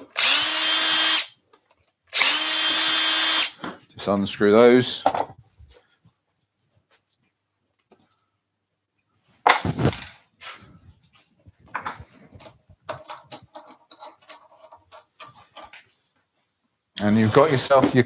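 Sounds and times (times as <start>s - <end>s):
clicks and rubbing of wood: 11.2s - 16.4s.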